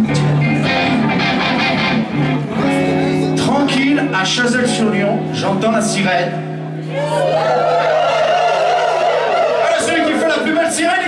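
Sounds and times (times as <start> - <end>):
guitar strumming: 0.0 - 6.9
live band playing: 0.0 - 7.4.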